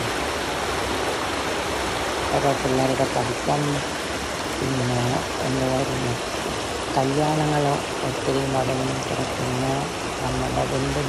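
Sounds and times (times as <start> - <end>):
water rushing over weir: 0.0 - 11.0.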